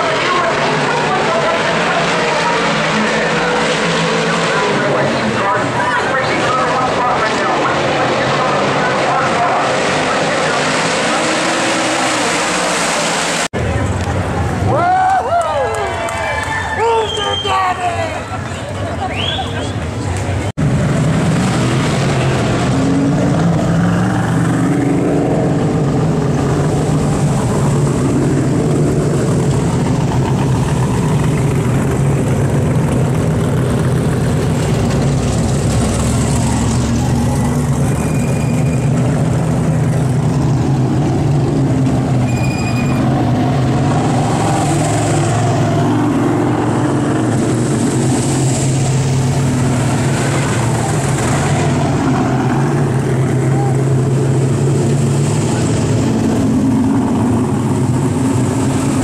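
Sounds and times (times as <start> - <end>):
race car engines rumbling: 0.0 - 59.0.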